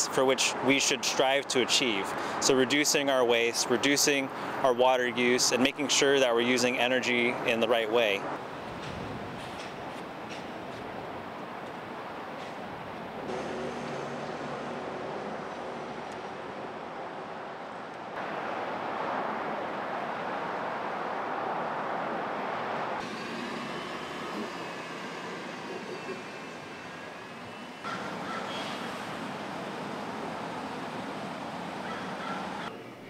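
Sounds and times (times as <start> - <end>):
traffic rush: 0.0 - 32.7.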